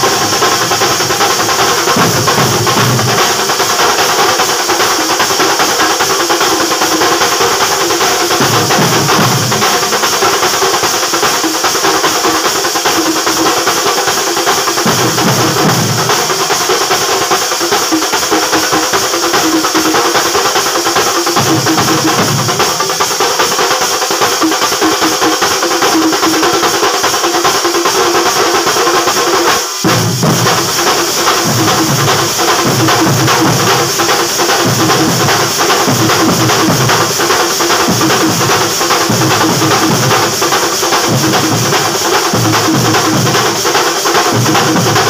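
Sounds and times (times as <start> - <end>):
deeper drum passages: 0.0 - 3.6, 8.3 - 10.8, 14.7 - 17.1, 29.8 - 45.0
large drums beaten with sticks: 0.0 - 45.0.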